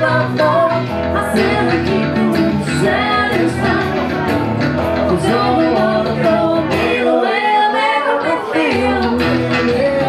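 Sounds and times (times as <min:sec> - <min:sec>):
live band with voices singing: 0:00.0 - 0:10.0.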